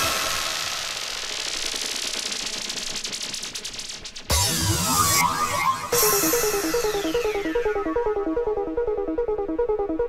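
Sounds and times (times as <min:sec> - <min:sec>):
fast rattling synth pulse: 0:00.0 - 0:08.0.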